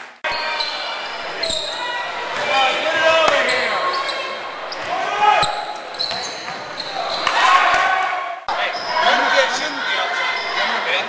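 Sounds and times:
people shouting: 0.3 - 6.0, 6.9 - 11.0
basketball bouncing on court: 4.7 - 7.4.

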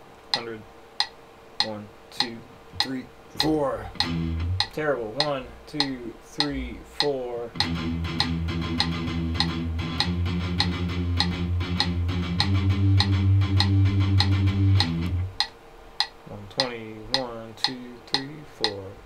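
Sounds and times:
metronome clicks: 0.3 - 18.9
person counting: 1.6 - 10.1, 16.3 - 19.0
electric guitar chugging riff: 3.4 - 4.7, 7.6 - 15.3.

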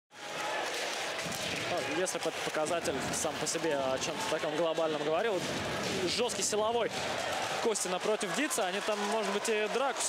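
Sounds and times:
man commentating: 1.7 - 7.0, 7.6 - 10.0.

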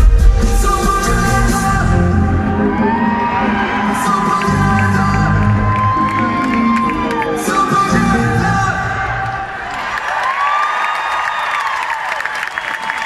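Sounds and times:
pop-rock band playing live: 0.0 - 9.2
crowd cheering and whooping: 0.1 - 13.0.

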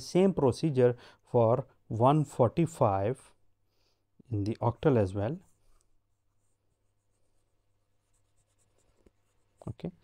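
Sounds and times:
stylus scratching on tablet screen: 5.2 - 10.0.

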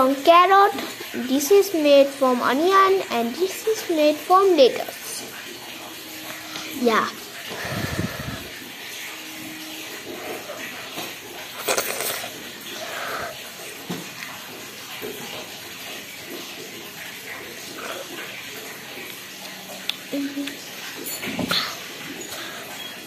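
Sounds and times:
eating with metal spoon: 10.0 - 13.4.

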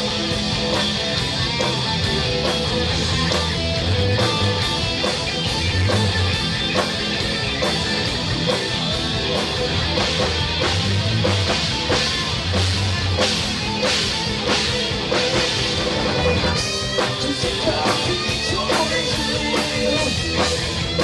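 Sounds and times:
drum kit with cymbal hits: 0.0 - 21.0
electric guitars: 0.0 - 21.0.

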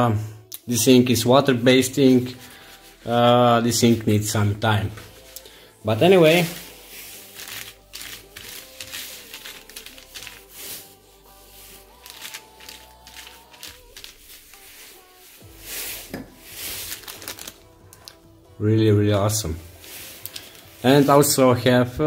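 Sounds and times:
soft background music: 0.0 - 22.0
plastic bag crinkling: 5.0 - 18.2, 19.8 - 21.4
hands clicking and rustling: 7.4 - 10.8, 12.0 - 14.6.

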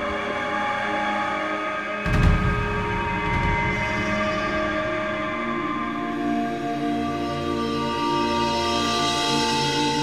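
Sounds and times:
music of sustained tones: 0.0 - 10.0
low rumble: 2.1 - 6.5.

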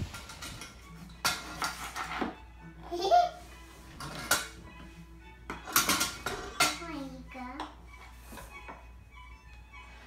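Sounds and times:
metal utensils clinking: 0.0 - 2.4, 3.9 - 4.6, 5.5 - 7.7.

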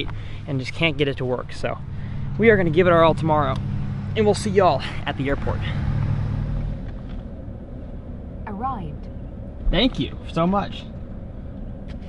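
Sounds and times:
engine and road rumble in a truck cab: 0.0 - 12.0.

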